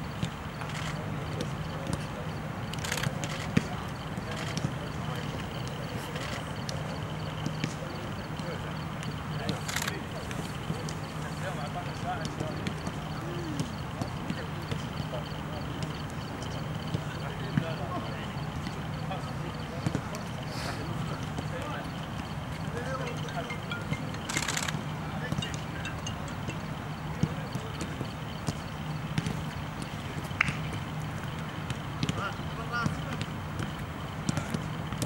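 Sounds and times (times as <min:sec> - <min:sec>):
voices chatting: 0:00.0 - 0:35.0
footballs being kicked: 0:34.3 - 0:34.6.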